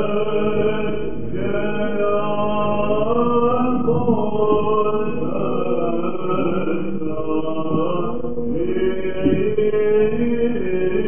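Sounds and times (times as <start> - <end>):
men chanting a hymn: 0.0 - 11.0.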